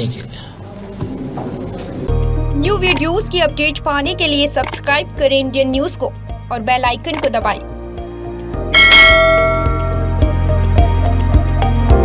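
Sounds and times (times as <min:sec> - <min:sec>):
background music with steady beat: 0:02.1 - 0:12.0
notification bell chime: 0:08.8 - 0:10.4.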